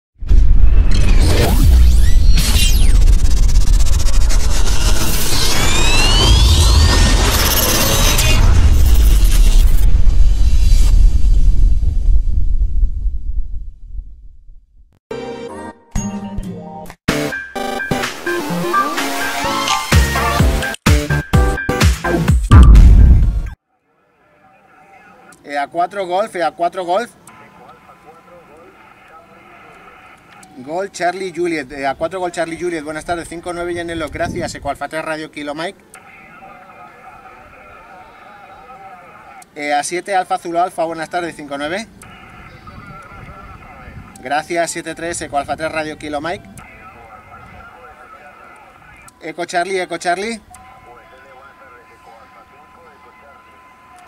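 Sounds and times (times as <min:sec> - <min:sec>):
deep booming rumble: 0:00.2 - 0:14.9
rising whistle-like tones: 0:00.6 - 0:11.4
radio band hiss: 0:01.3 - 0:10.9, 0:23.9 - 0:54.0
faint voice over radio: 0:23.7 - 0:26.5, 0:27.1 - 0:31.4, 0:36.0 - 0:39.6, 0:41.1 - 0:44.9, 0:45.7 - 0:49.4, 0:50.4 - 0:54.0.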